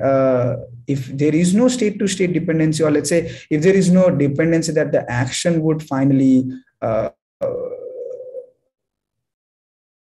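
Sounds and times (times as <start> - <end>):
person saying uh: 6.8 - 8.4.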